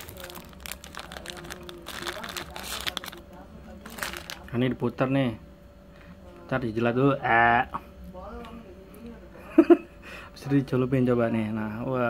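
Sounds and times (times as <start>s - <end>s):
wrapper crinkling: 0.0s - 4.6s.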